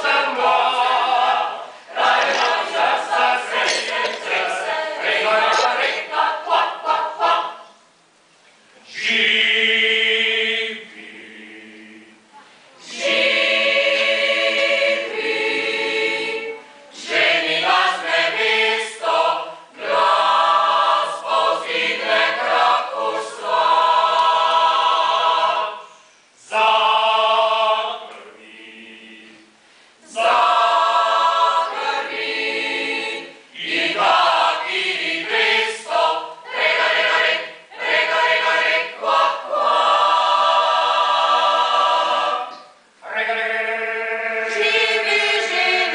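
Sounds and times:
mixed choir singing unaccompanied: 0:00.0 - 0:07.8, 0:08.9 - 0:45.9.

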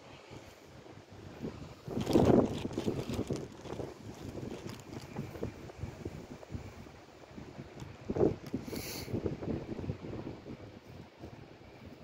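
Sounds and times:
wind buffeting microphone: 0:00.2 - 0:12.0.

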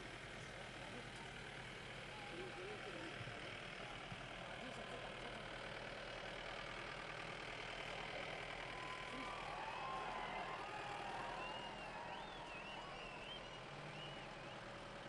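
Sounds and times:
indistinct crowd voices: 0:00.0 - 0:15.0
vehicles running: 0:00.0 - 0:15.0.

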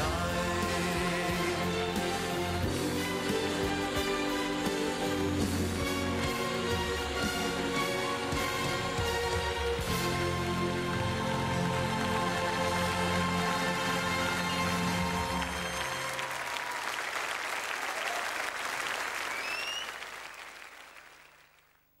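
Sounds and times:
audience applause: 0:09.7 - 0:22.0
rising whistles: 0:19.2 - 0:20.0.

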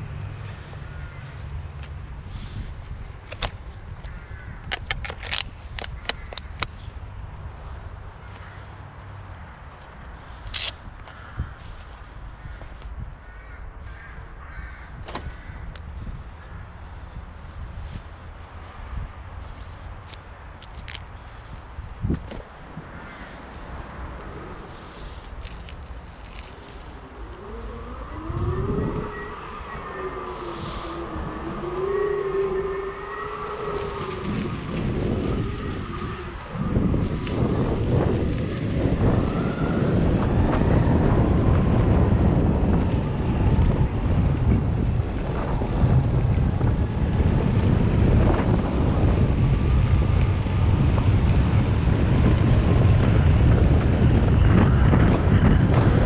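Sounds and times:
wind noise on microphone: 0:00.0 - 0:56.0
tyres rumbling on dirt path: 0:30.5 - 0:56.0.

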